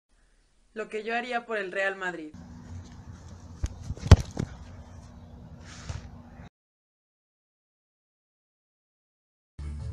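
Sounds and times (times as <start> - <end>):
football kicked: 3.6 - 4.7.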